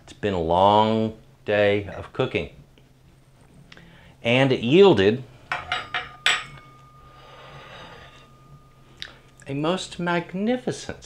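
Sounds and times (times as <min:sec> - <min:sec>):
plate ringing after clink: 0:05.5 - 0:10.3.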